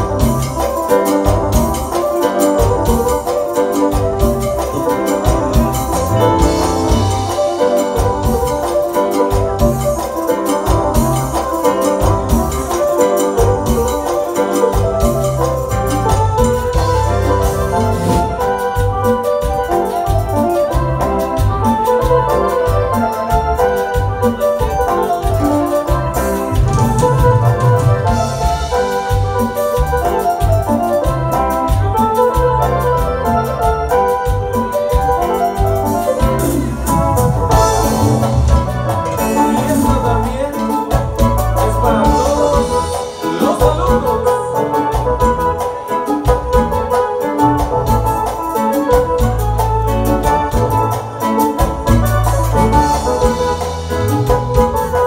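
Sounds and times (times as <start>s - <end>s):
bass and drums beat: 0.0s - 55.0s
electronic keyboard chords: 0.0s - 55.0s.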